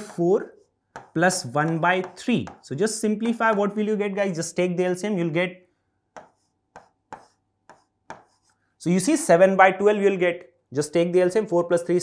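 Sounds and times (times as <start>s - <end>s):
pen tapping on writing board: 0.9s - 3.7s, 6.1s - 8.5s.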